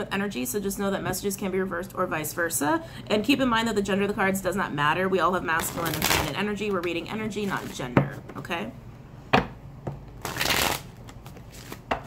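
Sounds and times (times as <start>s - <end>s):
cards being shuffled: 10.2s - 12.0s.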